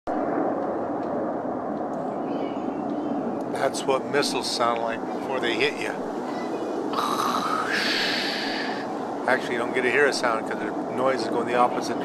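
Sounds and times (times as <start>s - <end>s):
jet aircraft passing overhead: 0.1s - 12.0s.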